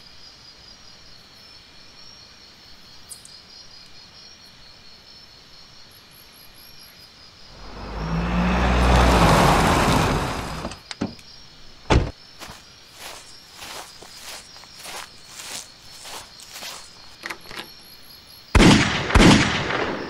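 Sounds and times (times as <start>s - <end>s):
crickets chirping: 0.0s - 18.6s
car approaching: 7.5s - 10.9s.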